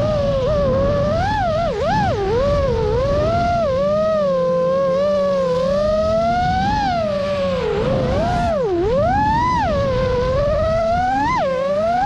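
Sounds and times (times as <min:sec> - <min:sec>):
quadcopter motors whining: 0:00.0 - 0:12.0
wind and prop wash rumble: 0:00.0 - 0:12.0.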